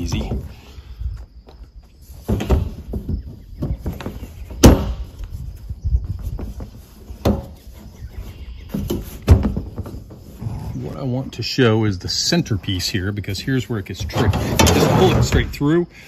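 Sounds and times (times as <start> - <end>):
knocks and clunks on steel: 2.2 - 5.2, 14.0 - 15.6.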